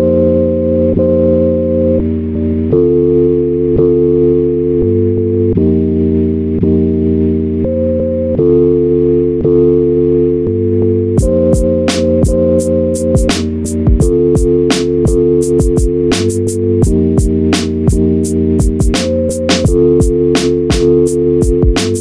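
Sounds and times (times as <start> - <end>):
instrumental hip-hop beat: 0.0 - 22.0.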